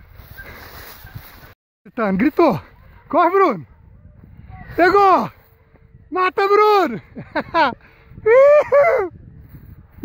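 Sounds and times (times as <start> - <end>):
footsteps through grass: 0.0 - 1.6
wind buffeting microphone: 2.4 - 10.0.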